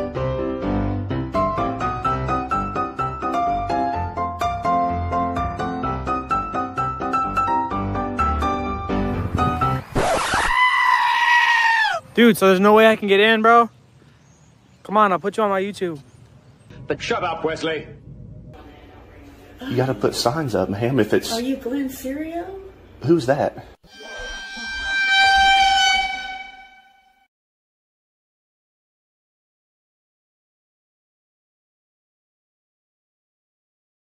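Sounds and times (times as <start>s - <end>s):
burst of noise: 9.9s - 10.7s
high scream-like cry: 10.0s - 12.1s, 23.9s - 27.2s.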